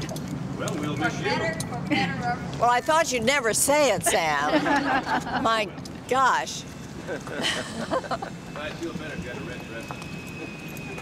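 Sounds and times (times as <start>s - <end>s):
faint high whine: 5.7s - 11.0s.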